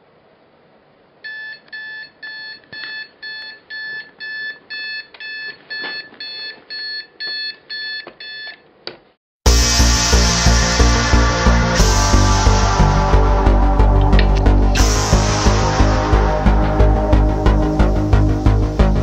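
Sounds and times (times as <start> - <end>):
alarm clock beeping: 1.2 - 8.6
electronic music with steady beat: 9.5 - 19.0.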